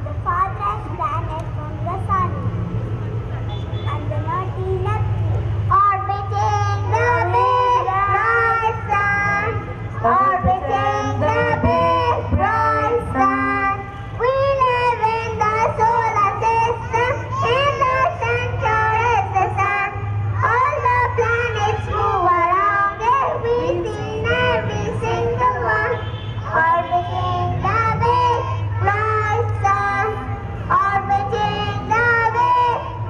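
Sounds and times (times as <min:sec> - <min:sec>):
children singing together: 0:05.9 - 0:33.0.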